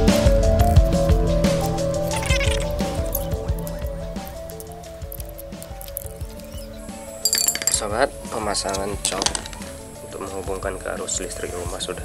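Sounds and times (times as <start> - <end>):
background music: 0.0 - 12.0
plastic plug parts clicking: 8.6 - 9.7.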